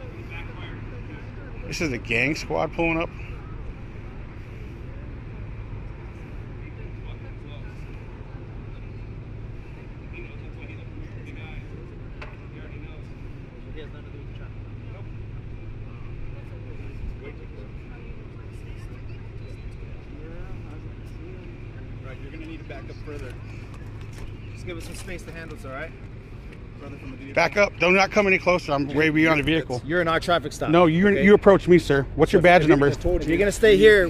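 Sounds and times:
car engines idling: 0.0 - 34.0
faint indistinct voices: 0.0 - 34.0.

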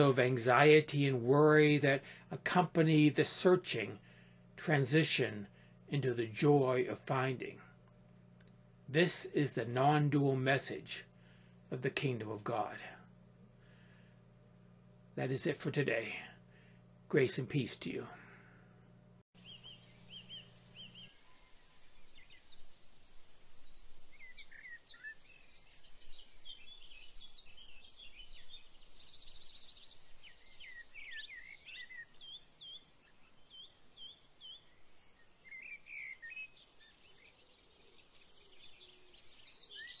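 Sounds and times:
songbirds singing: 0.0 - 18.6, 19.4 - 40.0.

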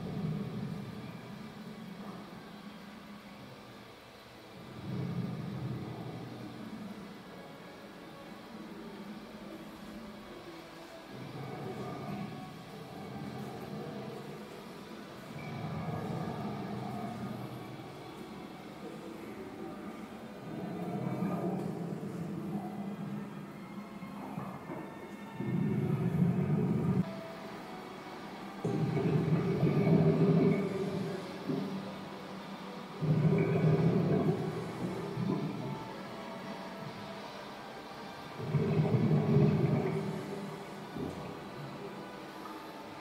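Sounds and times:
low rumbling tv music: 0.0 - 43.0
steady background hum: 0.0 - 43.0.

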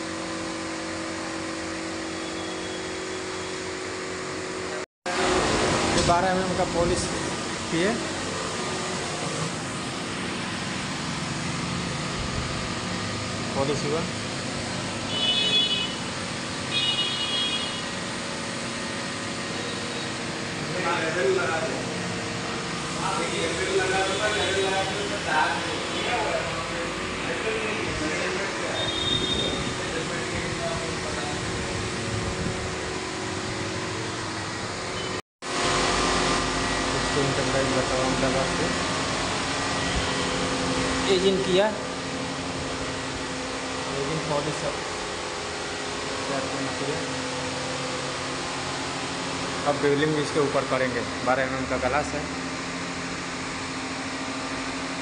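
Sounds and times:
electric motors humming: 0.0 - 55.0
short high-pitched whines: 1.9 - 3.8, 28.6 - 30.1.

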